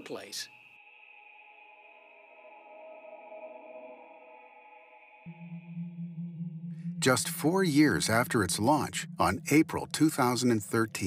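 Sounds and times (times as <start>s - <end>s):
ambient synthesizer drone: 0.6s - 11.0s.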